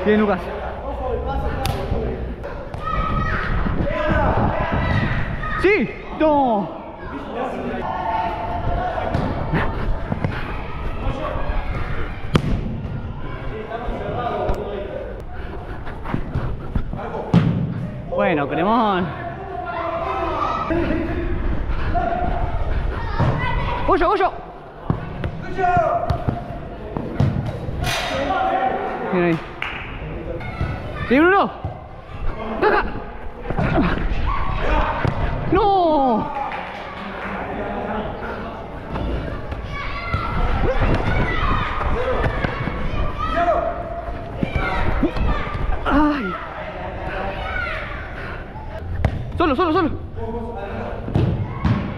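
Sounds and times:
players calling out in a hall: 0:00.0 - 0:51.9.

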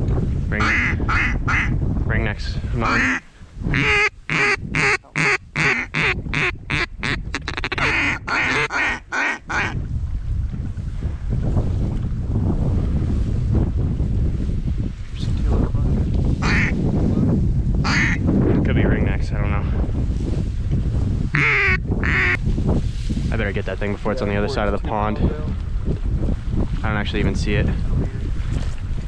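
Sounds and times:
wind rumble on microphone: 0:00.0 - 0:29.0
duck call quacks: 0:00.6 - 0:01.7, 0:02.8 - 0:03.2, 0:03.8 - 0:09.8, 0:16.4 - 0:16.8, 0:17.9 - 0:18.2, 0:21.4 - 0:22.4.

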